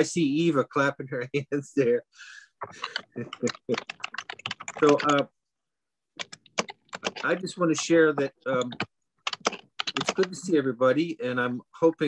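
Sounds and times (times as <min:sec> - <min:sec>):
keyboard key clicks: 0:06.2 - 0:07.3.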